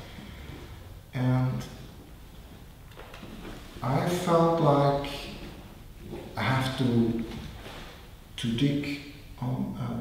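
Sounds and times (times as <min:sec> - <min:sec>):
man talking: 0:01.2 - 0:01.9, 0:03.8 - 0:05.6, 0:06.2 - 0:07.6, 0:08.4 - 0:10.0.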